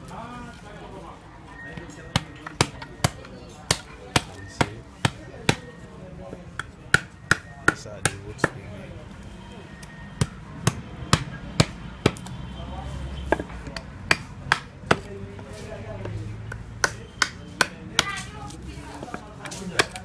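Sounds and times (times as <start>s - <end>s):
mallet striking chisel: 2.1s - 8.6s, 10.2s - 12.3s, 13.3s - 20.0s.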